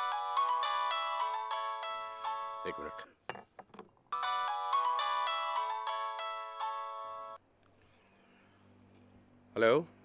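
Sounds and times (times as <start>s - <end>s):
phone ringtone melody: 0.0s - 3.1s, 4.2s - 7.4s.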